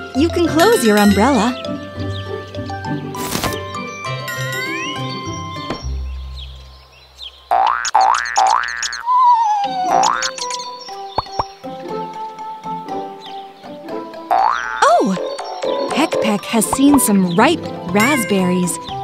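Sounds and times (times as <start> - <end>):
light children's music: 0.0 - 6.8, 9.6 - 19.0
wavering falling whistle: 9.0 - 10.6.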